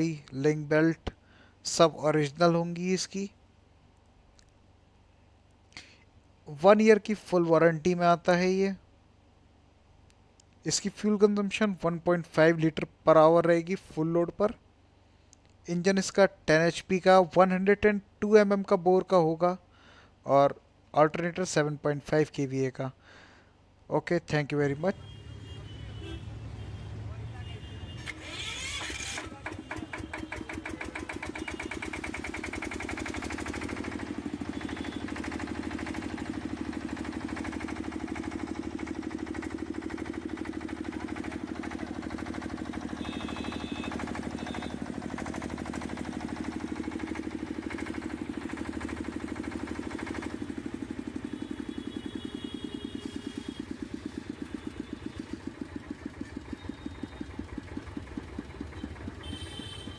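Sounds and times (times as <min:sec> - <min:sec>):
diesel engine running: 0:27.9 - 0:59.9
electric starter cranking: 0:28.0 - 0:59.9.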